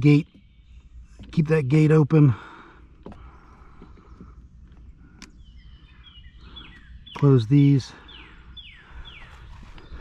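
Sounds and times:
falling bird chirps: 0:03.1 - 0:10.0.

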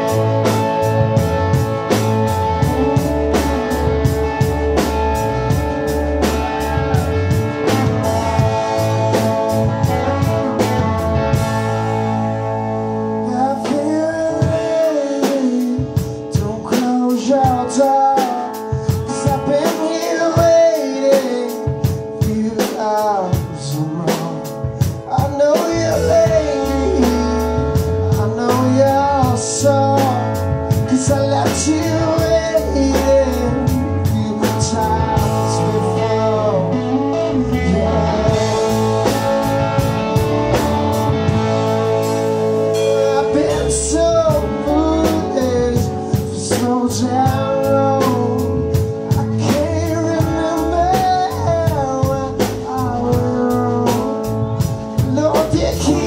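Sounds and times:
rock band playing: 0:00.0 - 0:56.0
person singing: 0:13.1 - 0:56.0.

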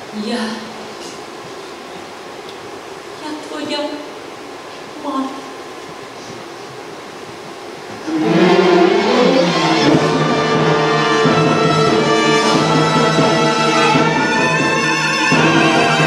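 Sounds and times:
symphony orchestra playing: 0:08.1 - 0:16.0.

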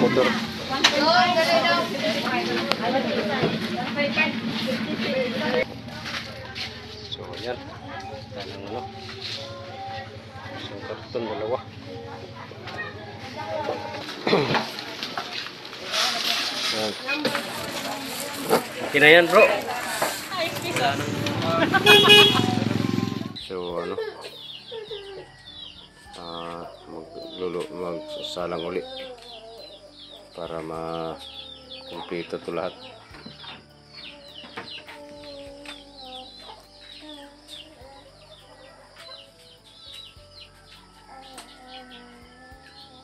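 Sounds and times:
birds chirping: 0:00.0 - 0:15.5, 0:16.8 - 0:43.0
small motorcycle engine running: 0:00.0 - 0:23.4
voices: 0:00.0 - 0:43.0.

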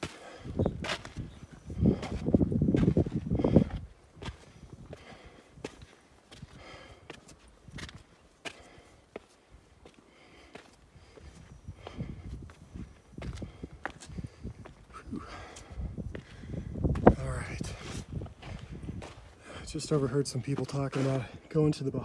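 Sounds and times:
heavy breathing: 0:00.0 - 0:00.8, 0:01.6 - 0:07.4, 0:08.4 - 0:20.1
footsteps on stone steps: 0:00.0 - 0:21.5.

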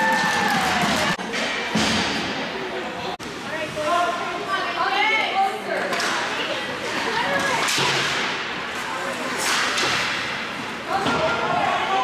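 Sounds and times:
spectators' voices: 0:00.0 - 0:12.0
skates scraping ice: 0:06.7 - 0:11.6.

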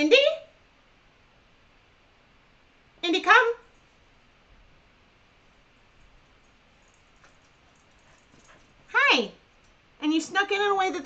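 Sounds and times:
woman saying hi: 0:08.9 - 0:09.3.

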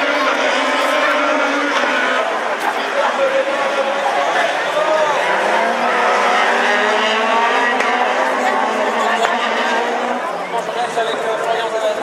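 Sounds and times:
race cars passing at high revs: 0:00.0 - 0:12.0.

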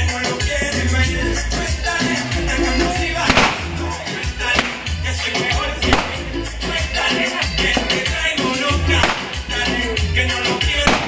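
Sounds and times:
latin dance music: 0:00.0 - 0:11.0
firecracker bang: 0:03.2 - 0:03.9, 0:04.5 - 0:05.0, 0:05.9 - 0:06.4, 0:09.0 - 0:09.5.

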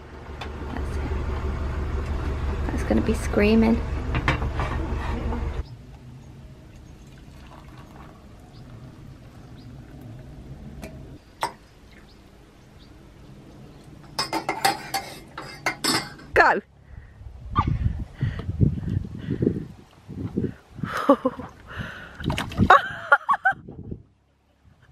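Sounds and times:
hot water pouring into mug: 0:07.0 - 0:08.4.

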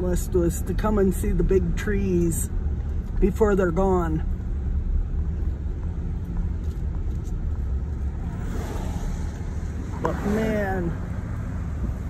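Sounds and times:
car interior road rumble: 0:00.0 - 0:12.0.

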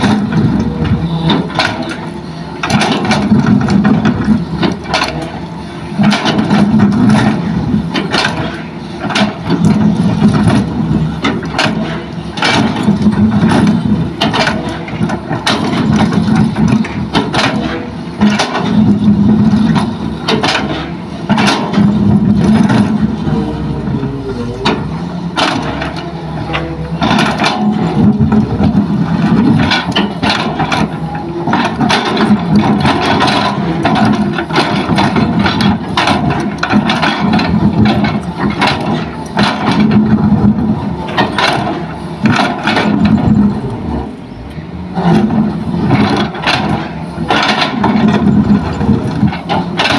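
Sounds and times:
excavator diesel engine under load: 0:00.0 - 0:49.9.

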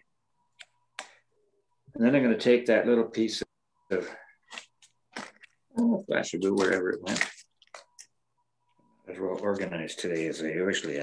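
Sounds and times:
man talking: 0:02.0 - 0:04.3, 0:05.9 - 0:07.3, 0:09.0 - 0:11.0.

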